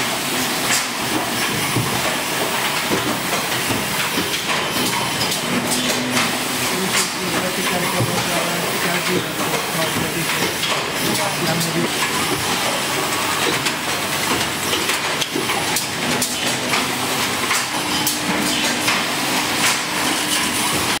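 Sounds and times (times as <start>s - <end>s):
conveyor clicks and knocks: 0.6s - 21.0s.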